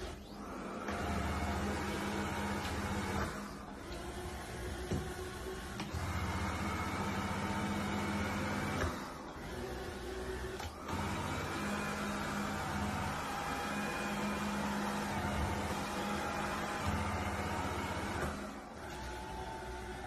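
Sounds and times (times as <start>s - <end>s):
robot vacuum cleaner running: 0.0s - 20.0s.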